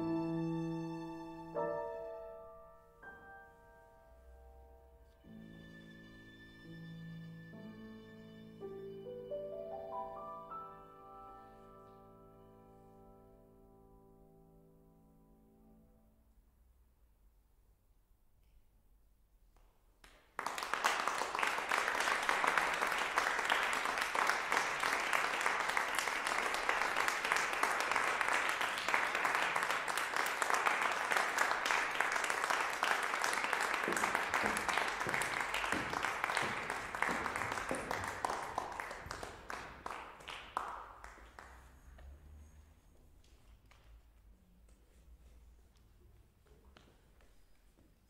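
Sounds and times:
audience applauding: 0:20.0 - 0:42.1.

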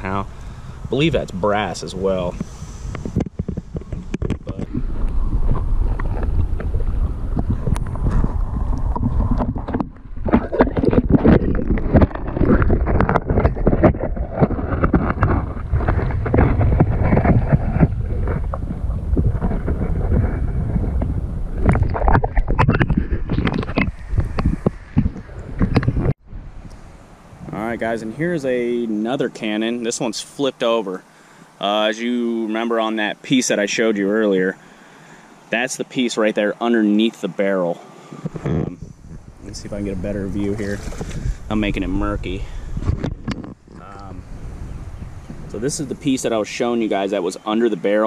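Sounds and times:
wind buffeting microphone: 0:00.0 - 0:28.8, 0:37.8 - 0:47.1.

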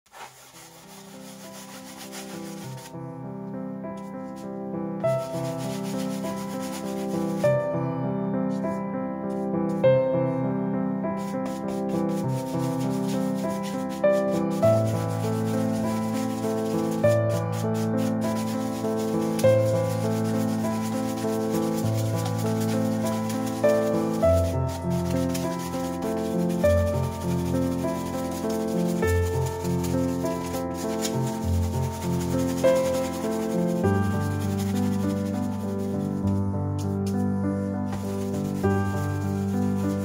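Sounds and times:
brush scratching on canvas: 0:00.0 - 0:03.0, 0:04.0 - 0:07.7, 0:08.5 - 0:09.8, 0:11.1 - 0:40.0
soft piano-like music: 0:00.1 - 0:40.0.

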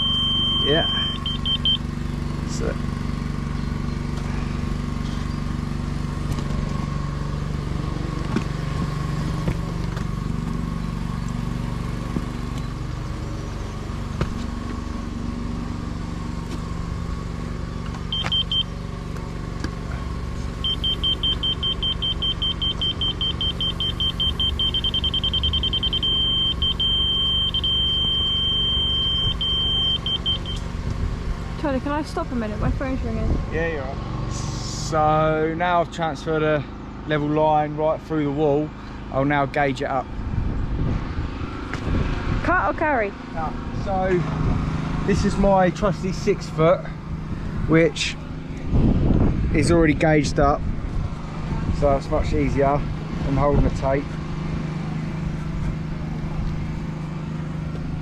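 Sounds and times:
laser receiver beeping: 0:00.0 - 0:01.8, 0:18.1 - 0:18.7, 0:20.6 - 0:30.6
steady low hum: 0:03.4 - 0:37.3.

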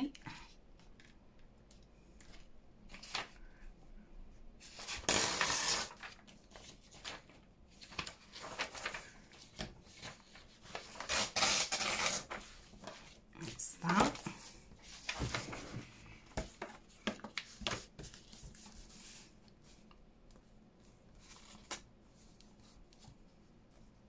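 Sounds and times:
paper rustling and sliding: 0:04.6 - 0:20.0.

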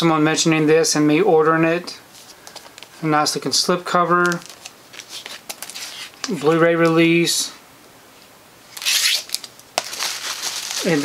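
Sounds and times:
plastic sleeve rustling: 0:02.1 - 0:03.0, 0:03.8 - 0:07.2, 0:08.7 - 0:11.0.

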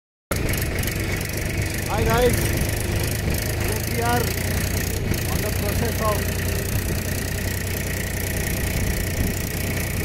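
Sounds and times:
tractor diesel engine running: 0:00.3 - 0:10.0.

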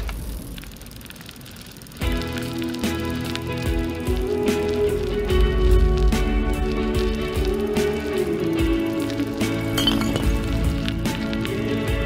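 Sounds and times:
background music: 0:02.0 - 0:12.0
glass bottle clinking on pavement: 0:09.8 - 0:10.5.

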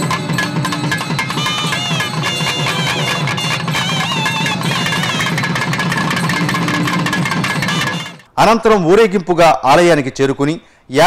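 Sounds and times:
fast steady drumming: 0:00.0 - 0:08.3
ornamented wind instrument melody: 0:00.0 - 0:08.3
man narrating: 0:08.4 - 0:11.0.

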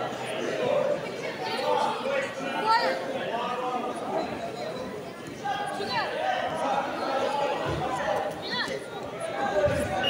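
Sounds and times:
crowd chattering in a hall: 0:00.0 - 0:10.0.

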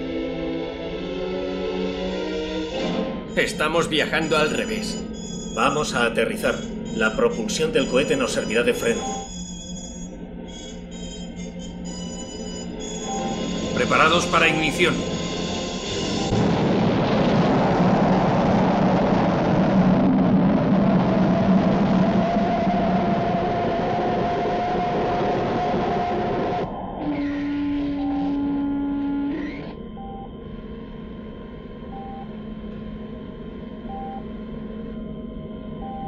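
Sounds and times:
low hum: 0:00.0 - 0:36.0
steady electronic tone: 0:00.0 - 0:36.0
short beeps: 0:03.3 - 0:16.4, 0:27.5 - 0:30.4, 0:31.9 - 0:32.3, 0:33.9 - 0:34.3, 0:35.8 - 0:36.0.

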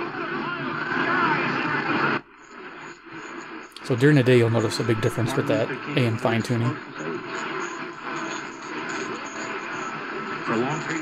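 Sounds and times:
radio static hiss: 0:00.0 - 0:11.0
weak radio station audio: 0:00.0 - 0:11.0.

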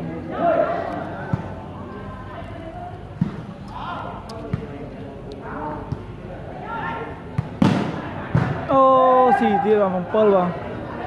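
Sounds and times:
spectators chattering: 0:00.0 - 0:11.0
volleyball struck by hands: 0:03.1 - 0:03.5, 0:04.3 - 0:04.8, 0:07.3 - 0:08.7.

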